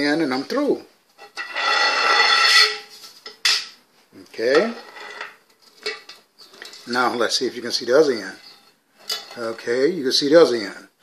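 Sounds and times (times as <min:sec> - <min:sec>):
glass tube scraping on concrete: 0:01.2 - 0:03.3, 0:04.6 - 0:07.1, 0:08.1 - 0:09.6.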